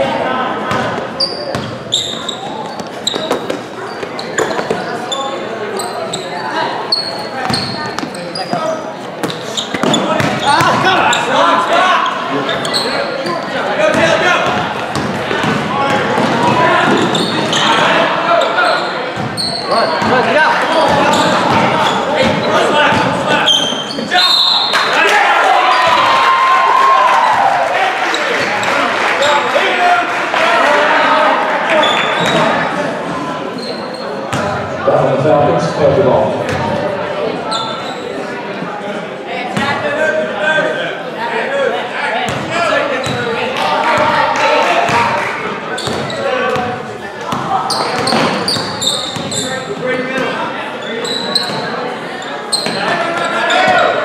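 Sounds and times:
crowd voices and shouts: 0.0s - 54.0s
sneaker squeaks: 0.7s - 24.9s, 31.7s - 32.7s, 33.5s - 34.6s, 37.4s - 38.2s, 43.0s - 43.4s, 45.7s - 54.0s.

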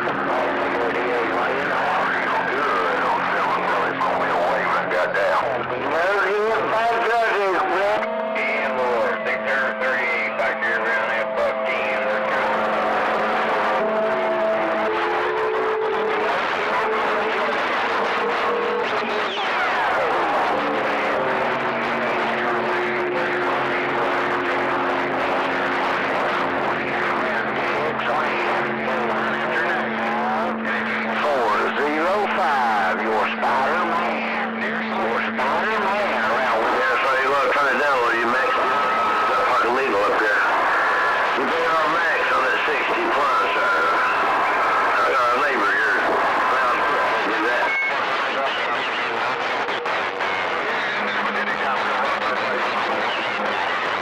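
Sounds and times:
garbled radio voices: 0.0s - 54.0s
radio channel hiss: 0.0s - 54.0s.

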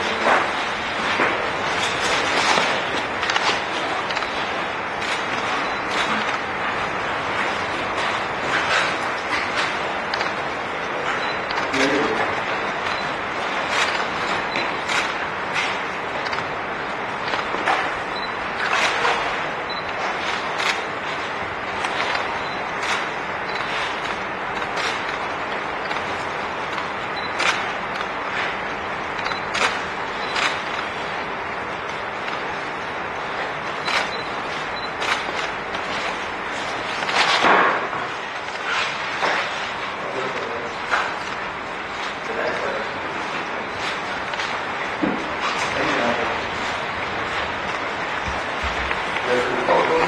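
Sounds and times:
sharp clicks: 2.5s - 4.4s, 21.8s - 28.1s, 29.2s - 30.9s.

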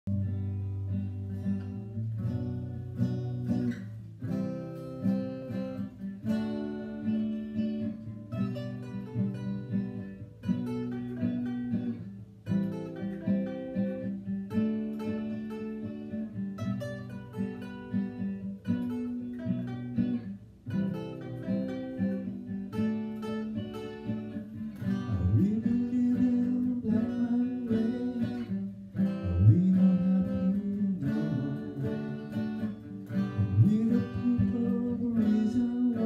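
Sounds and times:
acoustic guitar strumming: 0.1s - 36.0s.

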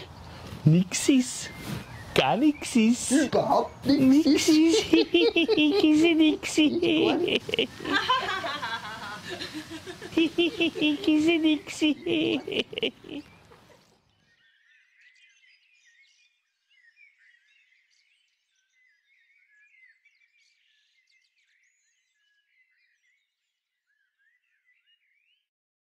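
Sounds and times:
small animals chirping: 10.0s - 13.9s.

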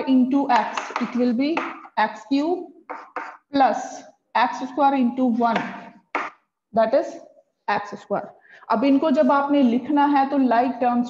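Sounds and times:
woman talking: 0.0s - 2.6s, 3.6s - 5.8s, 6.8s - 11.0s
chalk scraping on blackboard: 2.9s - 3.4s.

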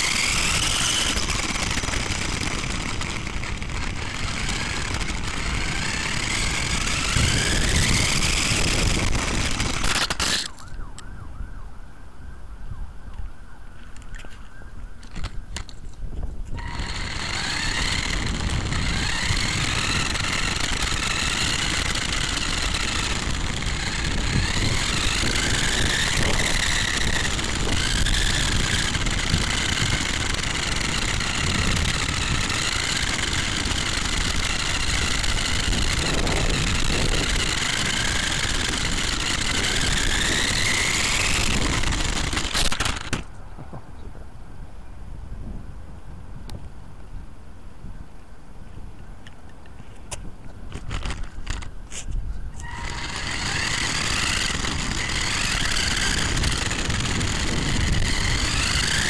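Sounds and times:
electric motor and gears whining: 0.0s - 11.1s, 13.9s - 43.4s, 50.6s - 59.0s
tyres and wind rumbling: 0.0s - 59.0s.

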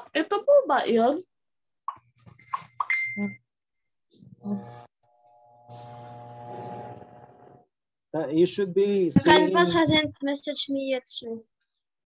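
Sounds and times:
mechanical hum with buzzing: 4.4s - 7.6s.

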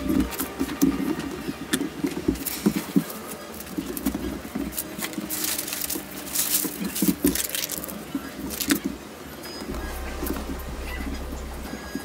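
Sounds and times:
kite paper crinkling and rustling: 0.0s - 10.5s.

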